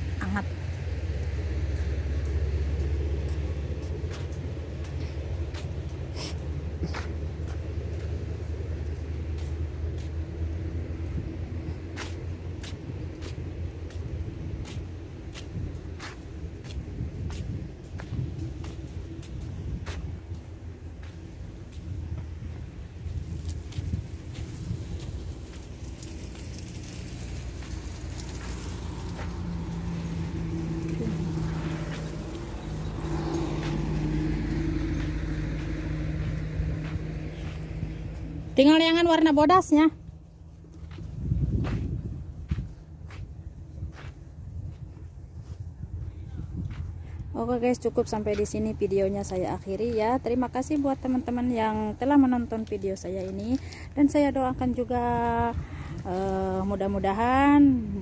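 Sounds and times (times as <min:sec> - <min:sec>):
low engine hum: 0:00.0 - 0:58.0
traffic rumble: 0:00.0 - 0:58.0.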